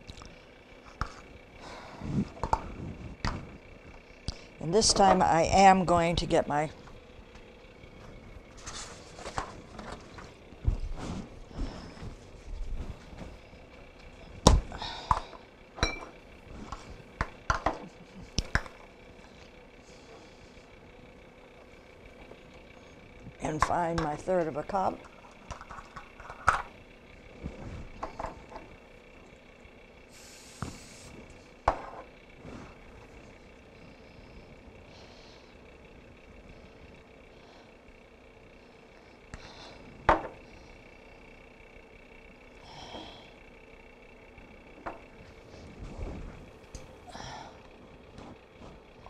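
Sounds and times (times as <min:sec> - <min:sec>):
faint steady hum: 0:00.0 - 0:49.0.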